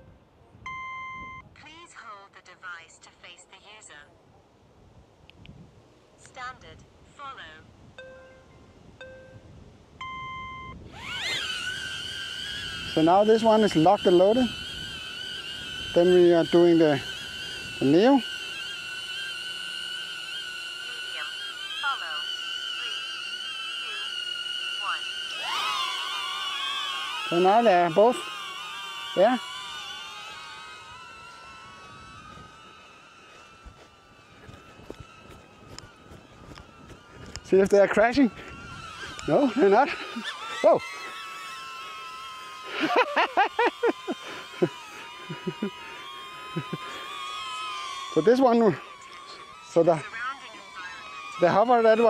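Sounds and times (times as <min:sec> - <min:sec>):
drone propellers whining: 0:00.0 - 0:01.6, 0:05.3 - 0:52.0
man laughing: 0:37.5 - 0:48.8.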